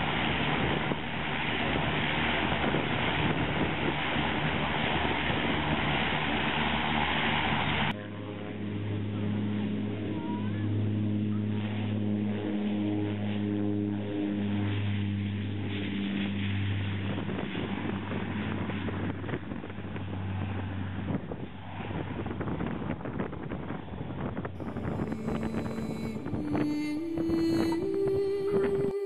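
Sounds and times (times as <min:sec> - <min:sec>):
propeller aircraft engine drone: 0:00.0 - 0:29.0
rough rumble: 0:00.0 - 0:29.0.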